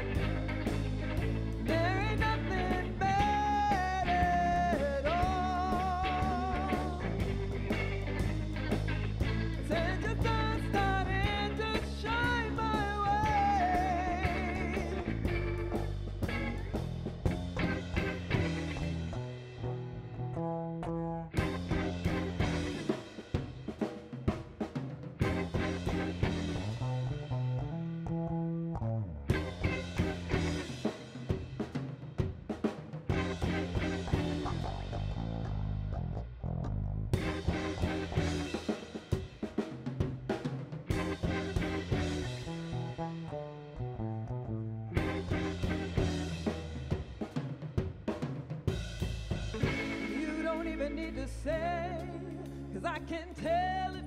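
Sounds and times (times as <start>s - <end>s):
drum kit: 0.0s - 20.3s, 21.3s - 27.8s, 29.3s - 43.5s, 44.9s - 54.0s
electric bass: 0.0s - 54.0s
electric guitar: 0.0s - 54.0s.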